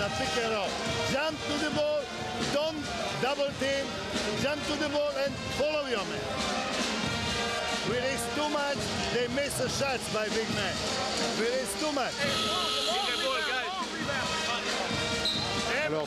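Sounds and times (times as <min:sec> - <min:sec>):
man giving instructions: 0:00.0 - 0:06.2, 0:07.8 - 0:14.8, 0:15.6 - 0:16.0
music playing in arena: 0:00.0 - 0:16.0.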